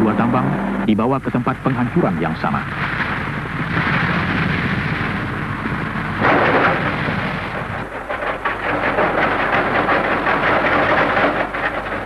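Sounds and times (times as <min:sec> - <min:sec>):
rocks tumbling and clattering: 0:02.6 - 0:12.0.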